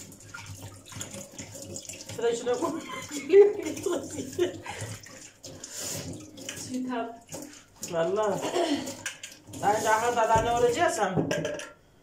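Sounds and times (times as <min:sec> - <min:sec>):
woman talking: 0:02.2 - 0:04.4, 0:06.6 - 0:07.2, 0:07.8 - 0:08.8, 0:09.6 - 0:11.3.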